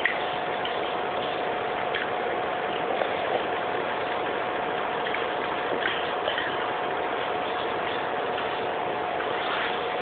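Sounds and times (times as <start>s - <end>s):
constant hum: 0.0s - 10.0s.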